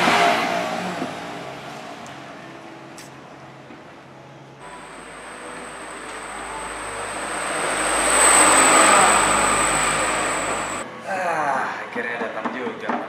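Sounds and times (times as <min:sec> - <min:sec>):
rushing noise with high whine: 0:04.6 - 0:10.8.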